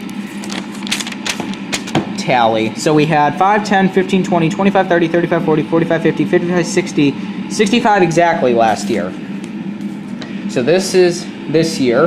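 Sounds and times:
paper rustling and crackling: 0.0 - 1.9.

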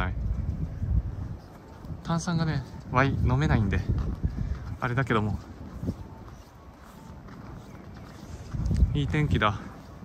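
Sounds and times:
footsteps crunching on snow: 0.4 - 10.0.

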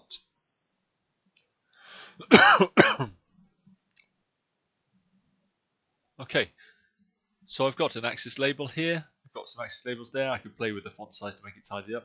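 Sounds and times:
intake of breath: 1.7 - 2.2
man coughing: 2.2 - 3.2.

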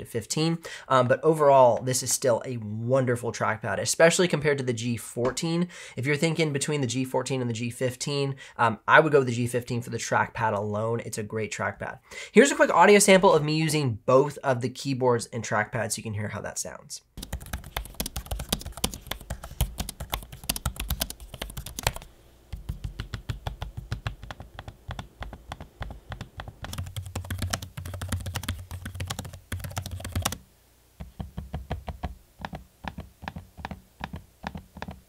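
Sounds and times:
laptop keys typing: 17.2 - 30.4, 31.0 - 35.0
trackpad clicking: 17.2 - 30.4, 31.0 - 35.0.

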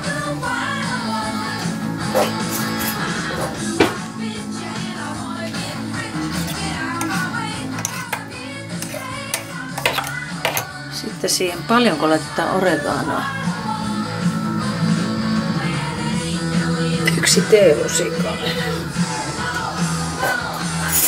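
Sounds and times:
rock song on radio: 0.0 - 21.0
spoon clicking against steel cup: 7.0 - 10.7.

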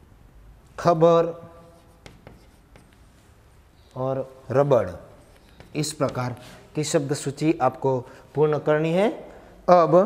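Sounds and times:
chalk tapping and scratching: 1.5 - 3.5, 4.6 - 7.3.

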